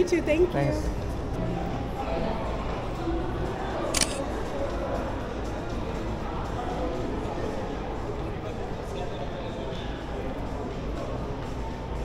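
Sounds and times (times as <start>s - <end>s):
busy indoor mall background: 0.0s - 12.0s
camera shutter click: 3.9s - 4.2s.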